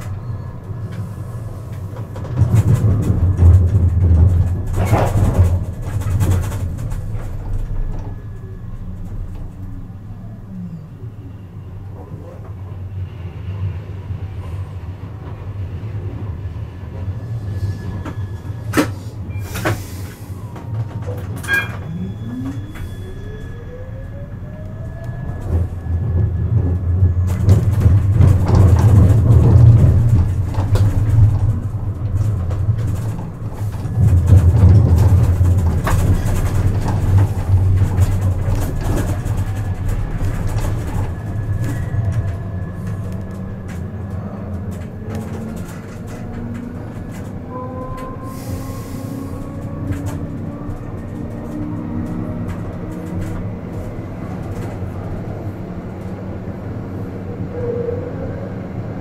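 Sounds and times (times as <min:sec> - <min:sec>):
tram electric drive whine: 0:00.0 - 0:59.0
wheels rumbling on rails: 0:00.0 - 0:59.0.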